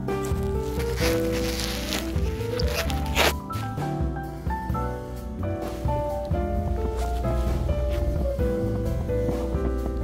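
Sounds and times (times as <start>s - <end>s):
background music with held notes: 0.0s - 10.0s
hand scooping into snow: 0.2s - 3.8s.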